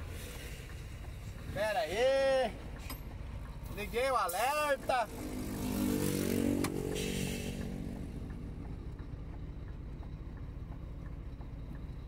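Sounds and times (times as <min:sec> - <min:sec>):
truck engine idling: 0:00.0 - 0:05.2, 0:06.8 - 0:12.0
motorcycle passing by: 0:04.7 - 0:08.7.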